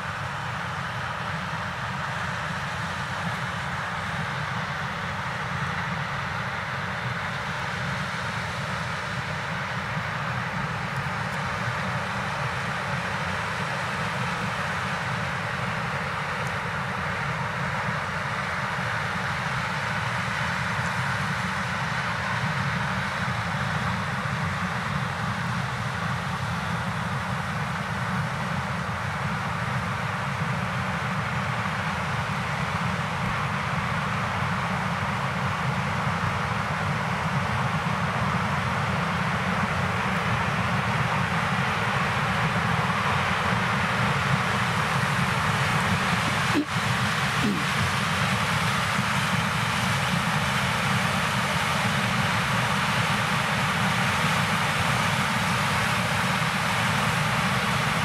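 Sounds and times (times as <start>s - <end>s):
combine harvester engine drone: 0.0s - 58.0s.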